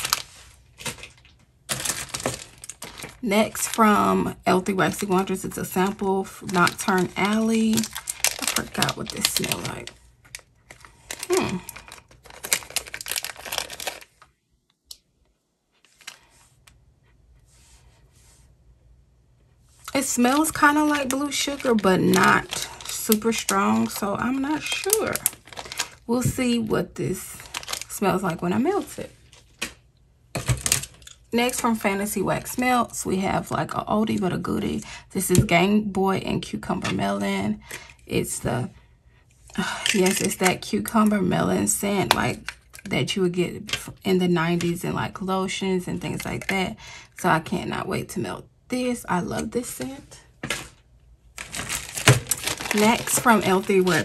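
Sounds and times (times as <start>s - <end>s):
plastic bag crinkling: 0.0s - 14.4s, 15.8s - 16.4s, 19.8s - 26.4s, 27.1s - 29.8s, 39.6s - 40.6s, 50.5s - 54.0s.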